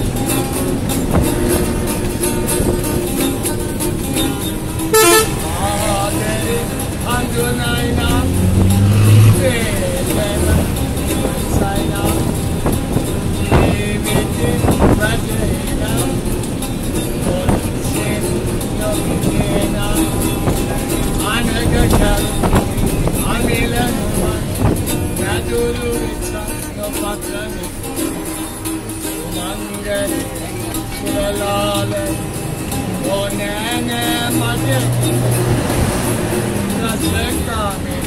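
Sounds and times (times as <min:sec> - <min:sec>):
acoustic guitar: 0:00.0 - 0:38.0
bus engine and road noise: 0:00.0 - 0:38.0
voices: 0:03.4 - 0:16.4, 0:17.2 - 0:38.0
horn toot: 0:04.9 - 0:05.6.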